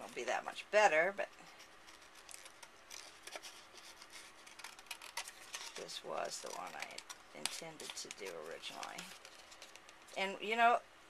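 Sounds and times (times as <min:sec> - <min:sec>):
scissors snipping paper: 0:01.6 - 0:10.0.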